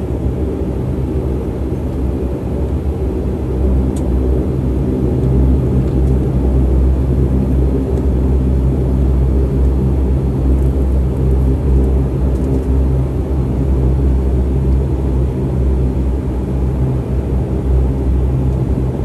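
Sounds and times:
airliner cabin rumble: 0.0s - 19.0s.

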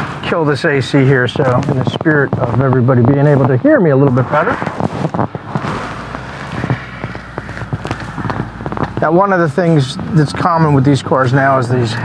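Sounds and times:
engine and road rumble: 0.0s - 12.0s
small irregular clicks and crackles: 0.9s - 3.6s, 4.6s - 9.2s.

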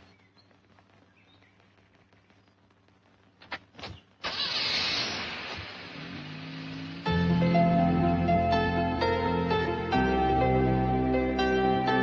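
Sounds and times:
car starting and pulling away: 4.2s - 10.0s
music: 7.0s - 12.0s.

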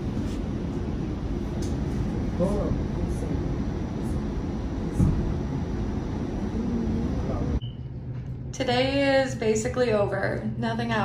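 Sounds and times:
vehicle rumble inside cabin: 0.0s - 9.0s.

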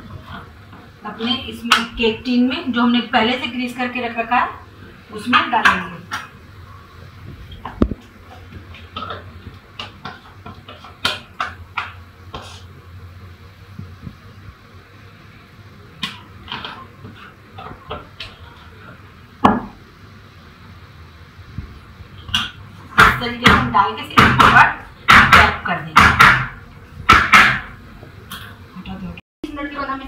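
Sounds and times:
loud knocks: 22.3s - 27.8s.

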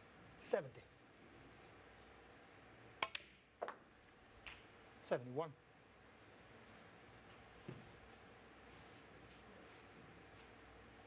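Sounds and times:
snooker balls clicking: 3.0s - 4.7s.

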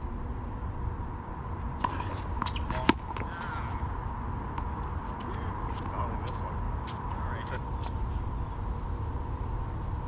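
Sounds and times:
thin high hum: 0.0s - 10.0s.

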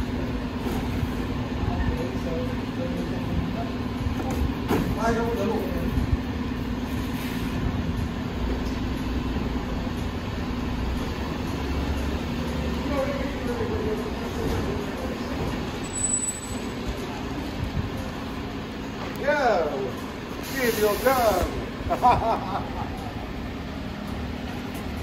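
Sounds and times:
garbage truck engine humming: 0.0s - 25.0s.

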